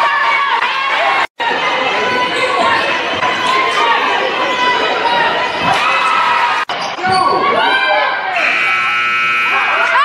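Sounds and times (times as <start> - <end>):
voices in a gym: 0.0 - 10.0
scoreboard buzzer: 8.3 - 10.0.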